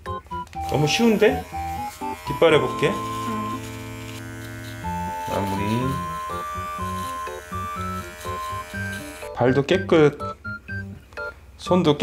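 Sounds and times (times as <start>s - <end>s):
background music: 0.0s - 12.0s
pet trimmer humming: 0.6s - 9.4s.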